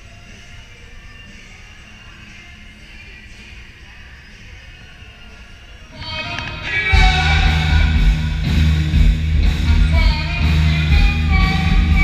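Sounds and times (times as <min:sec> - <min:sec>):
rock band playing: 0:06.0 - 0:12.0.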